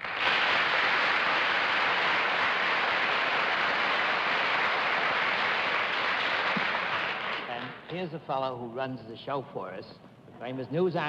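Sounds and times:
audience applauding: 0:00.0 - 0:07.8.

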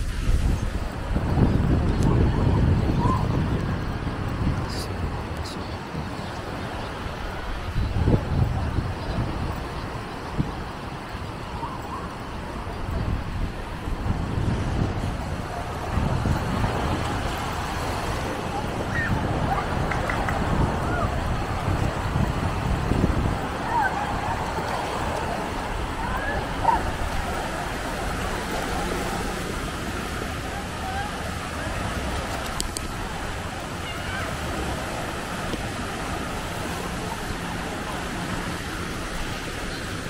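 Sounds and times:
small waves breaking on beach: 0:00.0 - 0:40.0
wind buffeting microphone: 0:00.0 - 0:40.0.

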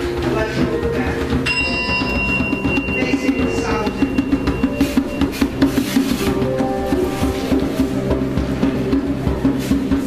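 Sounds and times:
group music with hand drum: 0:00.0 - 0:10.0
bell ringing: 0:01.4 - 0:08.1.

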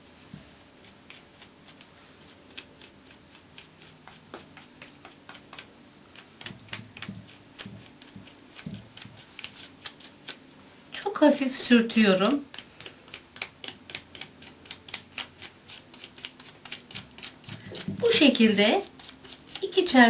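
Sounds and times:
faint scratchy brush strokes: 0:00.0 - 0:13.2.

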